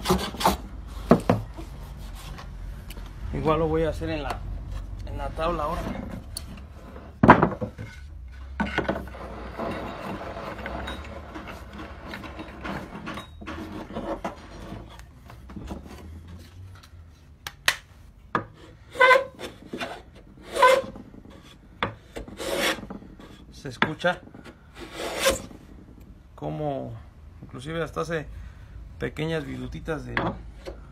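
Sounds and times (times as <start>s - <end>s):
hand plane cutting wood: 0.0s - 0.7s, 8.6s - 16.2s, 18.6s - 21.5s, 22.1s - 23.4s, 24.8s - 25.5s.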